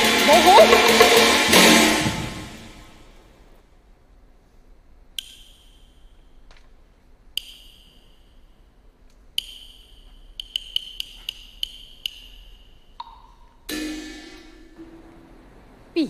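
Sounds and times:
small ringing metal percussion strikes: 9.5 - 15.6.

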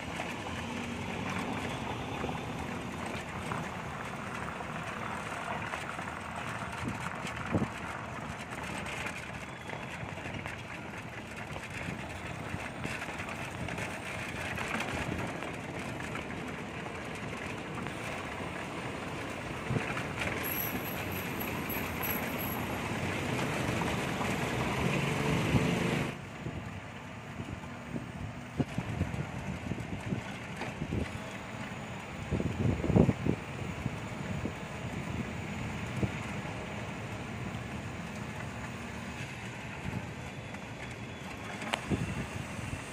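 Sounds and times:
rolling road noise: 0.0 - 42.9
surrounding traffic: 0.0 - 42.9.

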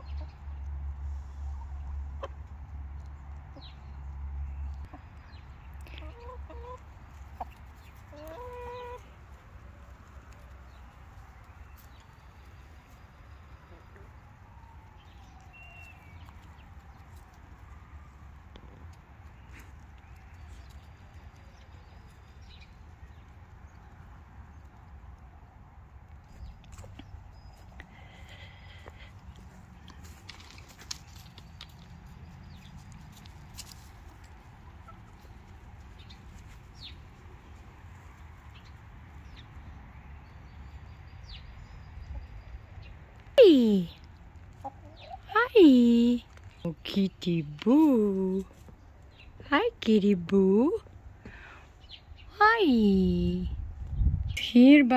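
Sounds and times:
hens clucking: 1.4 - 2.7, 5.8 - 9.2, 44.4 - 45.3.

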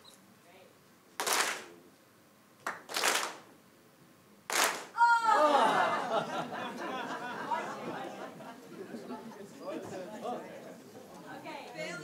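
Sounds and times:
audience clapping in unison: 1.2 - 1.7, 2.6 - 3.5, 4.5 - 5.0
leader clapping: 1.2 - 1.7, 2.6 - 3.4, 4.5 - 5.0
crowd voices: 5.0 - 12.0.

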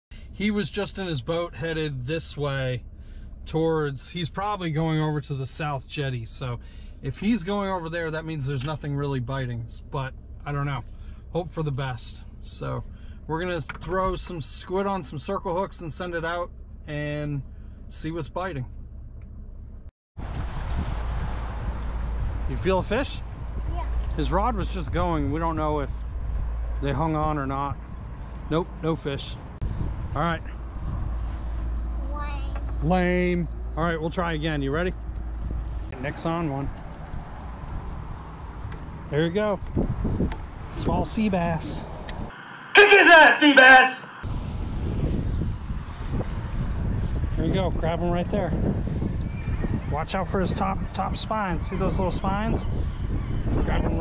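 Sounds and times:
wind buffeting microphone: 20.2 - 28.5, 29.4 - 31.4, 35.0 - 36.0, 36.6 - 42.3, 44.3 - 54.0.

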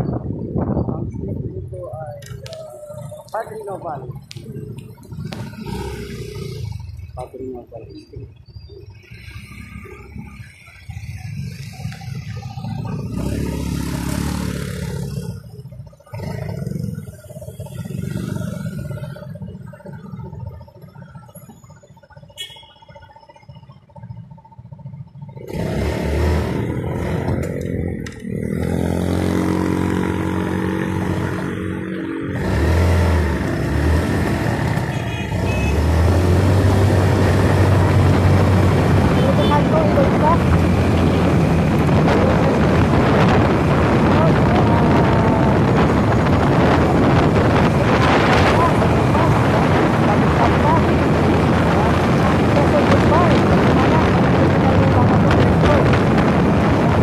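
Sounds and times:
vehicle engine and road noise: 0.0 - 57.0
vehicles passing: 0.0 - 57.0.

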